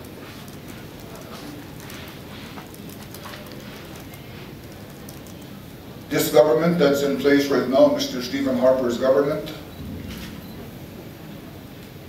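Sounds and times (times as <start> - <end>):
light clicks and taps: 0.0 - 5.6
low room noise: 0.0 - 12.0.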